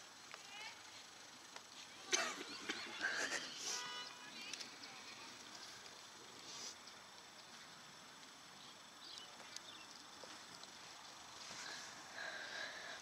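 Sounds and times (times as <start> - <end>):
open-air background: 0.0 - 13.0.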